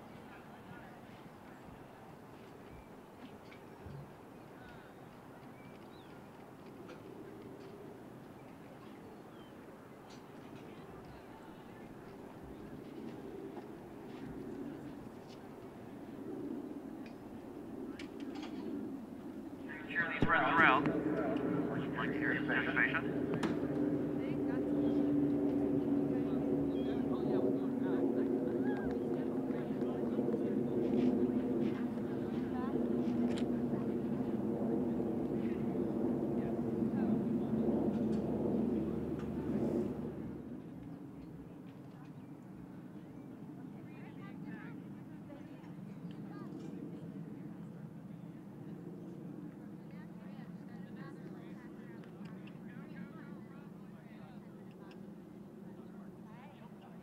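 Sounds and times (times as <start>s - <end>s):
outdoor background: 0.0s - 57.0s
engine drone: 19.6s - 40.5s.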